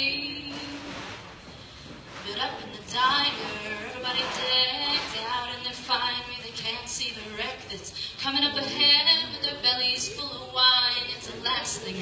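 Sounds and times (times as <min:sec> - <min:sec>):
woman singing into a microphone: 0:00.0 - 0:01.1, 0:02.2 - 0:12.0.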